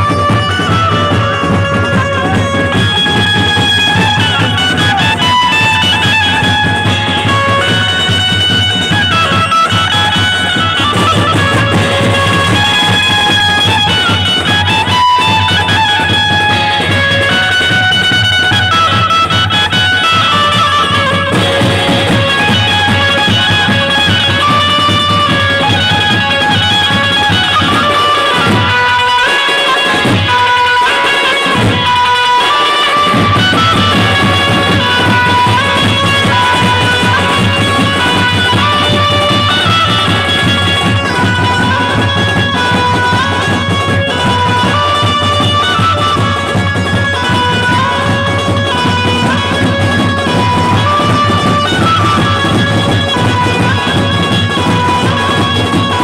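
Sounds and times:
band music through loudspeakers: 0.0s - 56.0s.

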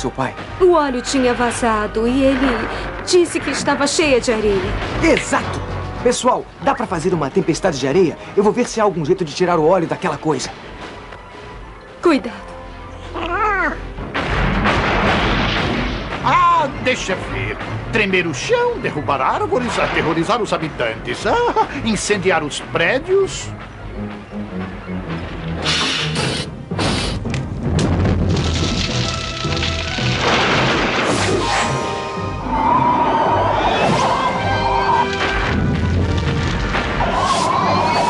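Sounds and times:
dramatic orchestral music: 0.0s - 38.0s
crashes and booms: 14.0s - 17.8s, 27.6s - 31.7s, 35.2s - 37.7s.

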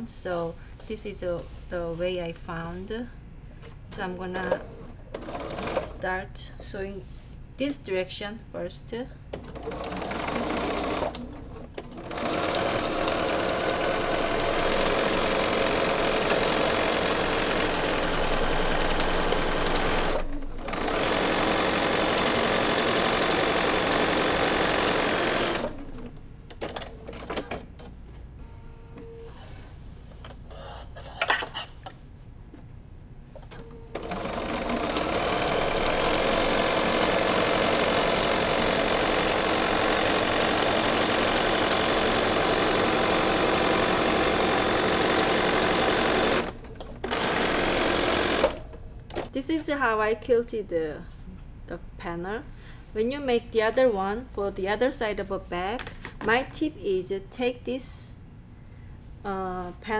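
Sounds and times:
sewing machine stitching: 9.4s - 26.0s, 33.9s - 48.6s.

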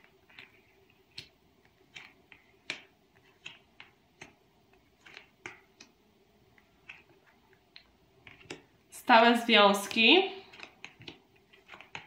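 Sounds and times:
cards clicking on table: 0.0s - 4.4s, 5.0s - 6.0s, 6.8s - 8.7s, 9.9s - 12.0s.

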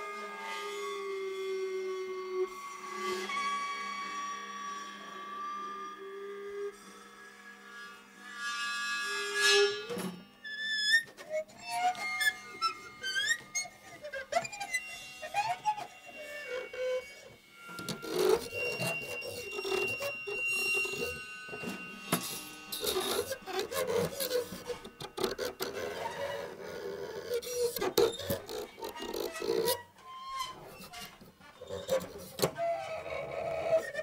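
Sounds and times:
squeaky electronic pitch glides: 10.5s - 34.0s
scraping on drumheads and cymbals: 11.0s - 34.0s.

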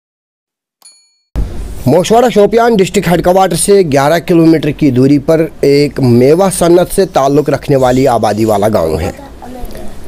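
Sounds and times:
bright chime ding: 0.8s - 1.3s
steady background noise: 1.4s - 10.0s
person narrating: 5.4s - 10.0s.

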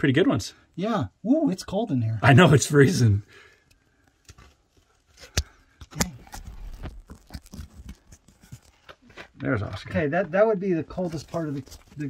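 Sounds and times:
clothing and gear rustling on rock: 6.3s - 10.3s, 10.9s - 12.0s.

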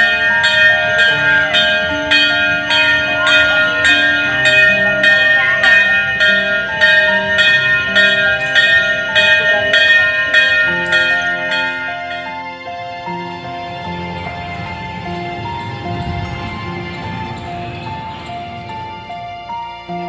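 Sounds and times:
background music with bell-like chimes: 0.0s - 20.0s.

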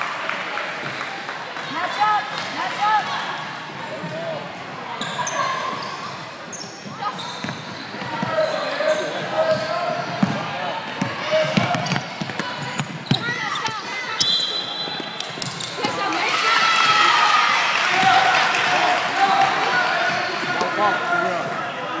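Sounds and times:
echoing voices in a gym: 0.0s - 22.0s.

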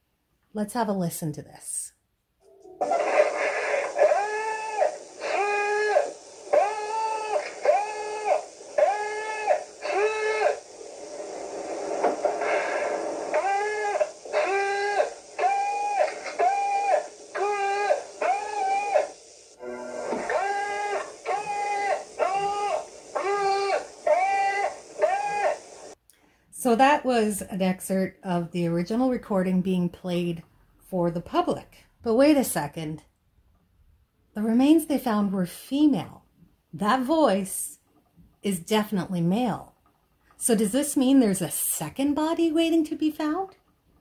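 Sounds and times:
tape hiss: 0.4s - 30.5s
man yelling: 20.4s - 25.7s.

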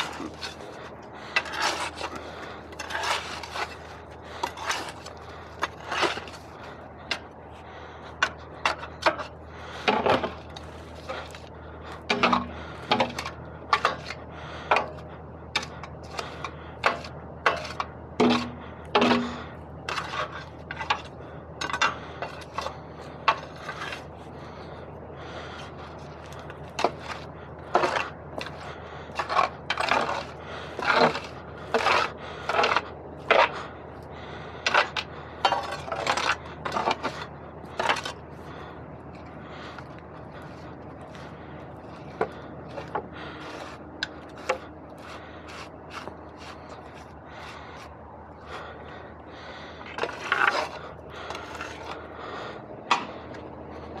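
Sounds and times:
pry bar scraping metal: 0.0s - 6.4s, 8.2s - 15.0s, 15.6s - 24.1s, 26.4s - 33.6s, 34.6s - 38.2s, 41.8s - 47.9s, 49.9s - 52.0s
steady low hum: 0.0s - 54.0s.

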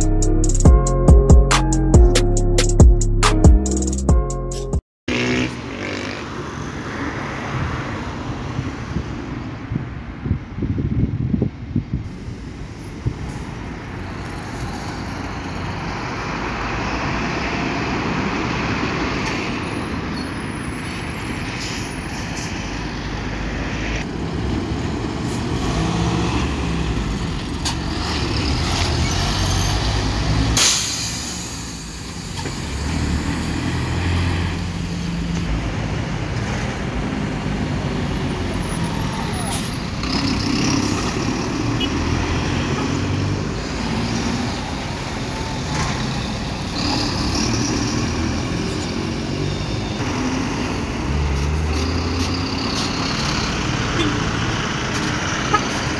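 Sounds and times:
bus diesel engines driving past: 5.1s - 55.9s
air brakes hissing: 20.1s - 22.8s, 30.4s - 32.8s.

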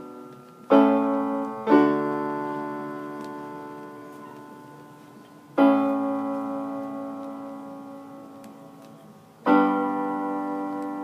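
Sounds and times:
piano chord: 0.0s - 11.0s.

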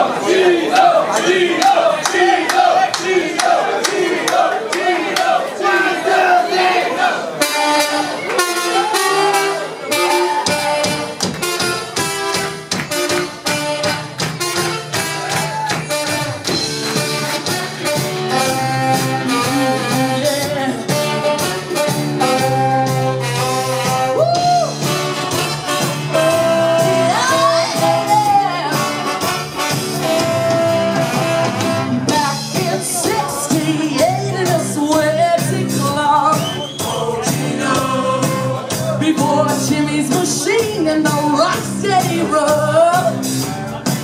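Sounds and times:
group of voices singing: 0.0s - 8.2s, 32.0s - 43.2s
soul band with horn section: 0.0s - 44.0s
rhythmic hand claps: 0.8s - 5.8s, 10.6s - 18.0s.

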